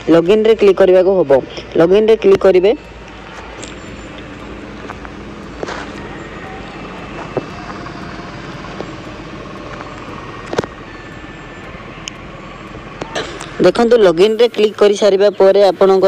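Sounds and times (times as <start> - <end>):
steady background noise: 0.0 - 16.0.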